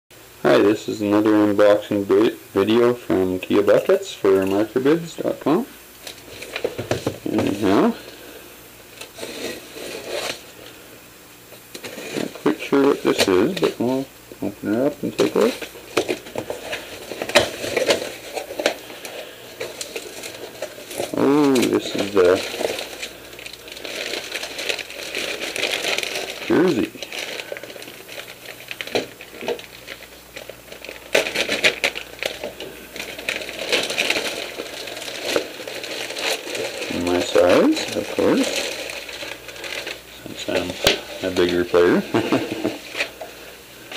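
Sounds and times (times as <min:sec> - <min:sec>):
plastic bag crinkling: 0:03.4 - 0:10.9, 0:11.5 - 0:43.9
cardboard package scraping: 0:06.0 - 0:08.3, 0:09.0 - 0:10.8, 0:11.7 - 0:14.0, 0:14.7 - 0:43.9.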